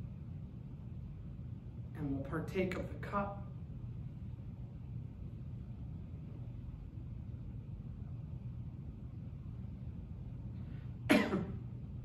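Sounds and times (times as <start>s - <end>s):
low steady hum: 0.0s - 12.0s
man coughing: 11.1s - 11.6s.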